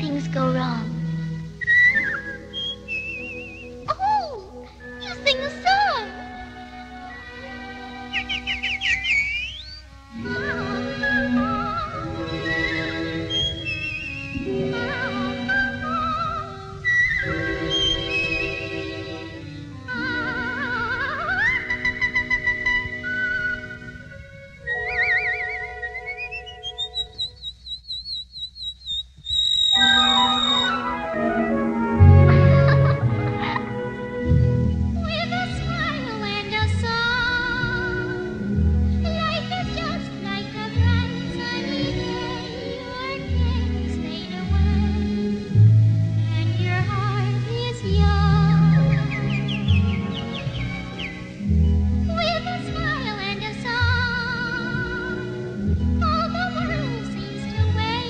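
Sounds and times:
soft orchestral accompaniment: 0.0 - 27.2, 29.7 - 58.0
whistled bird chirps: 1.6 - 5.4, 8.0 - 9.9, 11.0 - 18.9, 21.4 - 31.2, 48.6 - 51.3.

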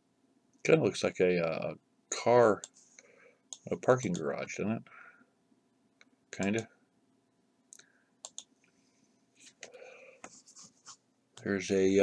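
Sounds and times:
computer mouse clicks: 7.7 - 8.8
soft scratchy rustle: 10.3 - 11.0.

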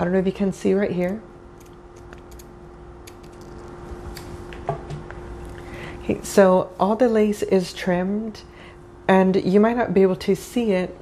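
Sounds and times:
steady low hum: 0.0 - 11.0
scissors snipping clicks: 1.6 - 3.5.

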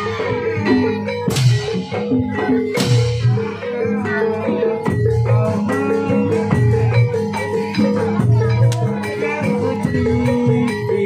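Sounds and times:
percussion strikes: 0.0 - 11.0.

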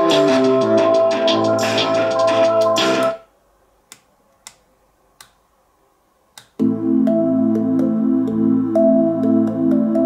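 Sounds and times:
music from portable speaker: 0.0 - 3.2, 6.6 - 10.0.

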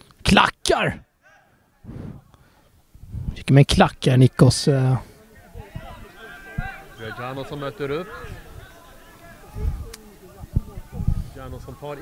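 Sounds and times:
low murmur of voices: 5.0 - 12.0
distant call: 5.2 - 11.0.

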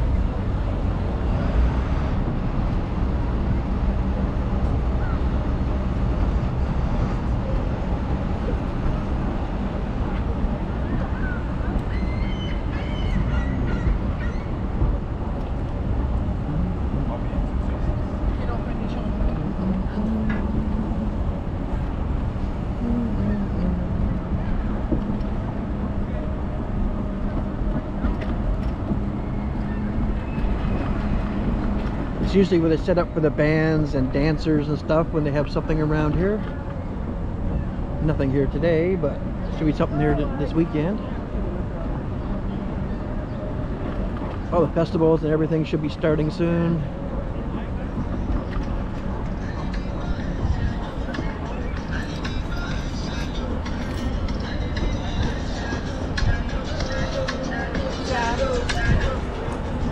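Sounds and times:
faint voices of passers-by: 0.0 - 59.9
low rumble of traffic: 0.0 - 59.9
wind on microphone: 47.1 - 59.9.

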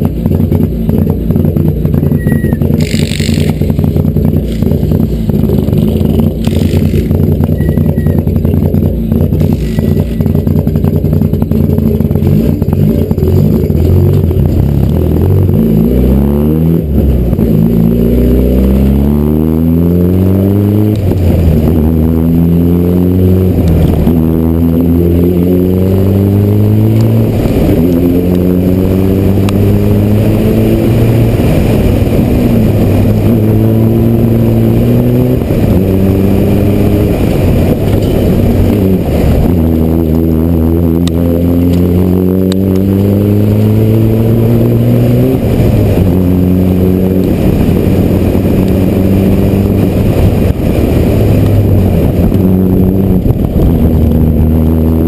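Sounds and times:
rally car engine revving: 0.0 - 55.0.

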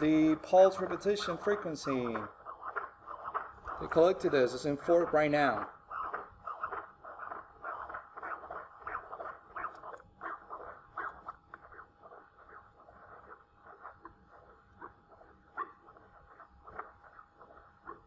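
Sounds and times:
rhythmic whooshing doppler pulses: 0.0 - 18.0.

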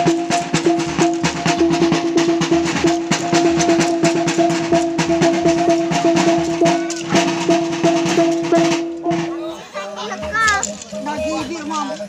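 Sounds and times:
children talking and calling out: 6.0 - 12.0
crowd chatter: 6.5 - 12.0.

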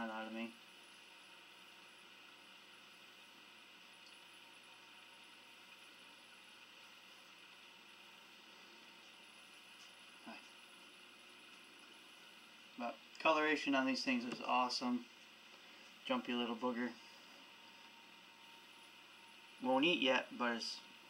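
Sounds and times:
faint hiss: 0.0 - 21.0.

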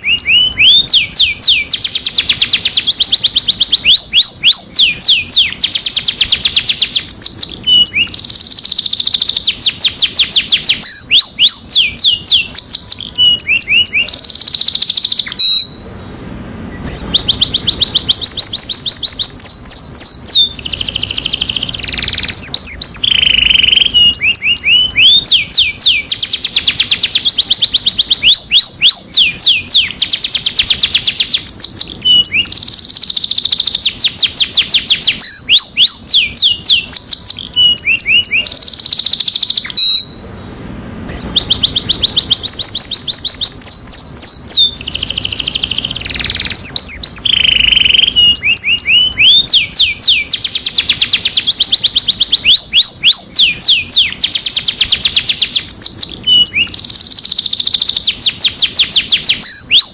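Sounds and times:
canary singing trills: 0.0 - 59.9.

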